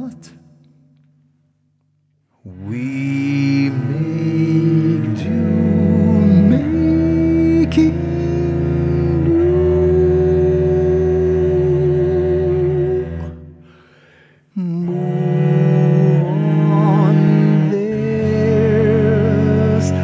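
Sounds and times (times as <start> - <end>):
wordless voice humming: 0.0 - 0.8, 14.5 - 20.0
cello: 2.3 - 20.0.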